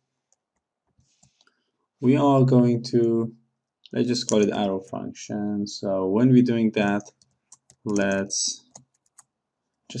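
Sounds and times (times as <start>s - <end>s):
faint keyboard clicks: 3.9s - 4.7s, 6.9s - 10.0s.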